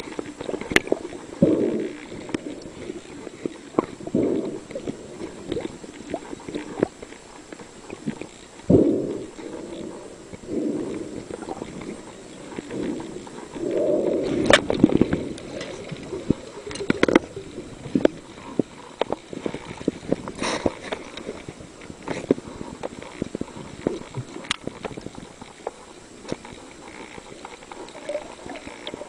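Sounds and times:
underwater bubbling gurgles: 0.0 - 29.0.

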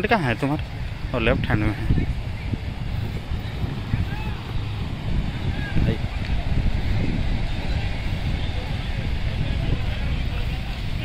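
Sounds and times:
faint crowd voices: 0.0 - 11.0
wind buffeting microphone: 0.0 - 11.0.

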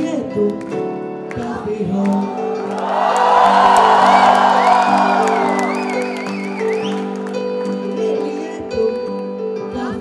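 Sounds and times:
woman singing through microphone: 0.0 - 2.5, 8.0 - 10.0
crowd cheering and whooping: 2.5 - 7.4.

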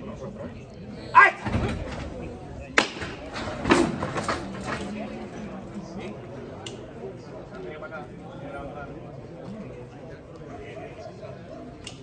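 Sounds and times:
man shouting a command: 1.1 - 1.5.

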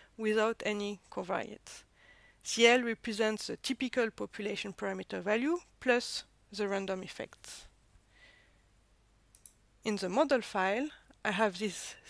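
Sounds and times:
soft intake of breath: 1.9 - 2.4, 8.0 - 8.7.

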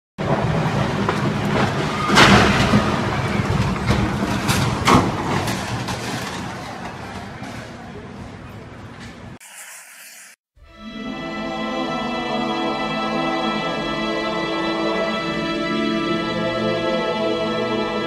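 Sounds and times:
sharp crashes: 0.2 - 7.8
street commotion with voices: 6.2 - 9.4.

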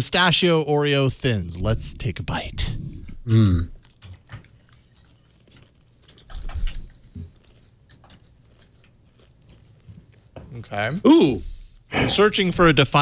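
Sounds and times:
cookies being bitten and chewed: 2.8 - 10.7.

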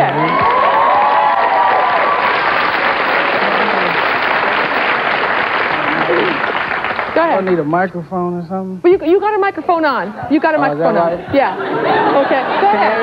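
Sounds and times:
crowd whooping: 0.0 - 6.9
audience applauding and cheering: 0.0 - 7.7.

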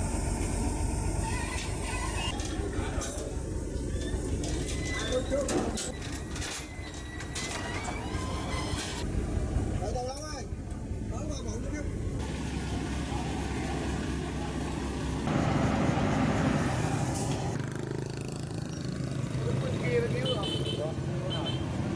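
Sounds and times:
vehicle engine noise: 0.0 - 6.6, 8.5 - 21.9.

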